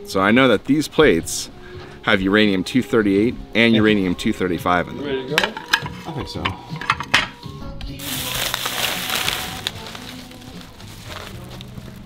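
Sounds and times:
background music: 0.0 - 12.0
plastic bag rustling: 8.0 - 12.0.

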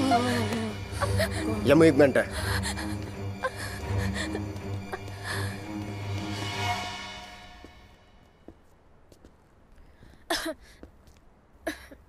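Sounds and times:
background music with low drone: 0.0 - 8.3.

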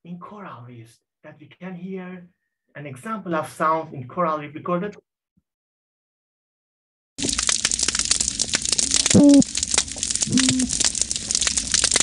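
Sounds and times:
snapping shrimp crackle: 7.2 - 12.0.

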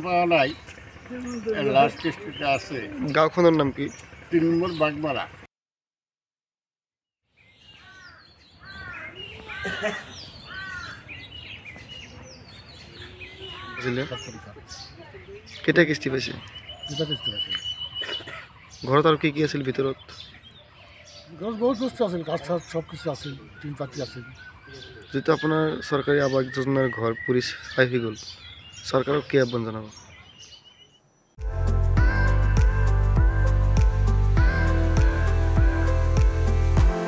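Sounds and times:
birds chirping: 0.0 - 5.5, 7.3 - 37.0
outdoor background hum: 0.0 - 5.5, 7.8 - 25.1.

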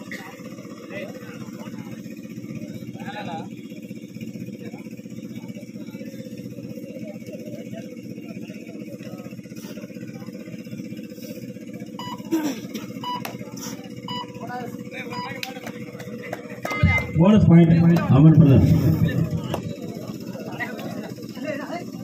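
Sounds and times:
engine running with fast pulse: 0.0 - 22.0
faint crowd voices: 0.0 - 22.0.

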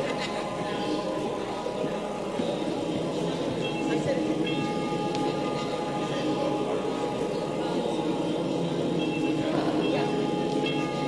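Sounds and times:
muffled speech: 0.0 - 11.0
steady high ringing tone: 0.6 - 11.0.

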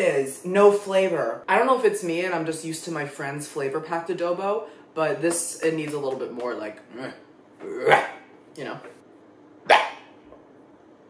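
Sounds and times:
man burping: 6.9 - 8.2.

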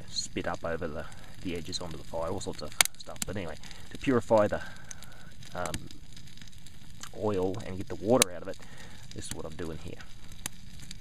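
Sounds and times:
open fire crackling: 0.0 - 11.0.

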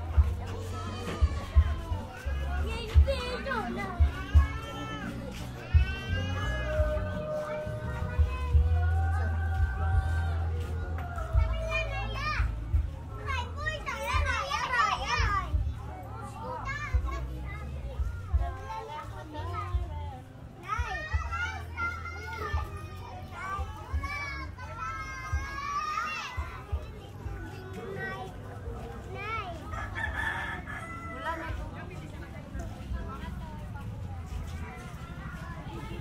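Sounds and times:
children shouting and chattering: 0.0 - 36.0.

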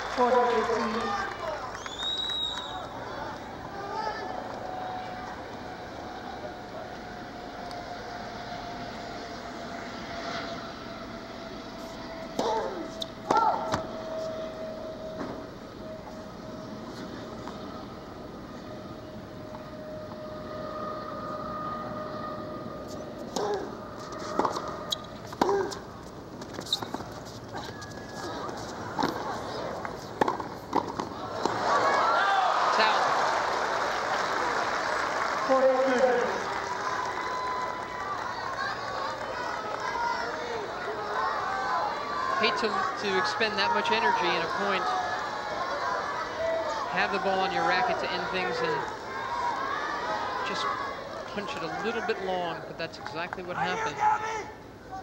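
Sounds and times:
crowd cheering and applause: 0.0 - 9.0, 27.5 - 52.2
crowd murmuring: 2.8 - 26.0, 26.6 - 55.0
people shouting: 31.2 - 33.1, 35.9 - 52.2.

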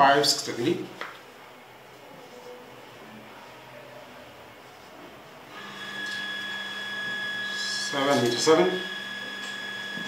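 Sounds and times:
machine hum and high whine: 5.4 - 10.0.

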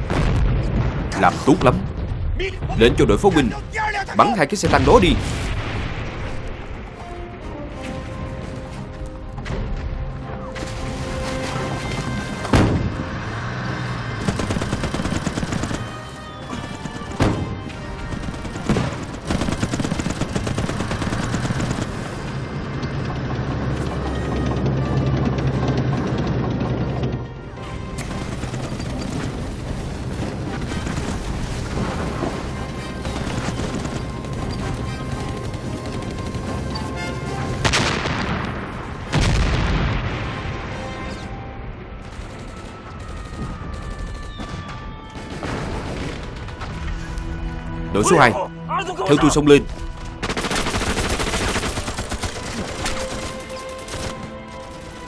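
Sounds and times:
explosions: 0.0 - 3.4, 4.6 - 7.0, 12.4 - 13.2, 37.6 - 46.8
dramatic orchestral music: 0.0 - 55.0
gunfire: 14.2 - 22.3, 50.2 - 54.8.

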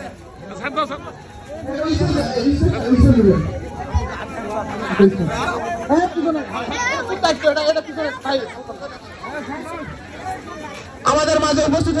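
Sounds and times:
men's voices chattering: 0.0 - 12.0.

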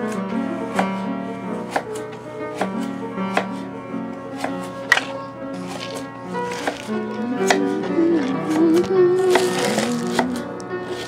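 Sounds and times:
classical piano music: 0.0 - 11.0
knife chopping on cutting board: 1.7 - 2.0, 2.6 - 3.6, 4.4 - 7.7.

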